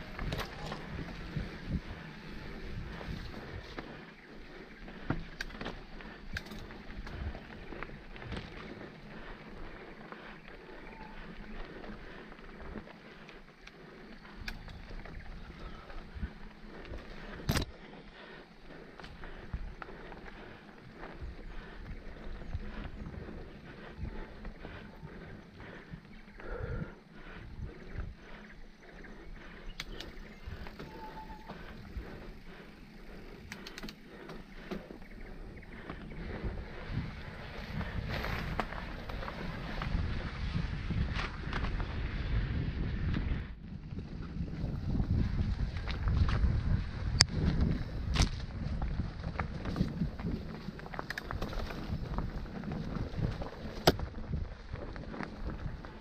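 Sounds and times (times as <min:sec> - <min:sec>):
bike rattling: 0:00.0 - 0:56.0
wind rumble on microphone: 0:00.0 - 0:56.0.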